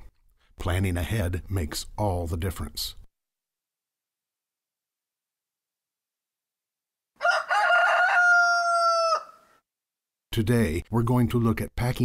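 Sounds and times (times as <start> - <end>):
rooster crowing: 7.2 - 9.5.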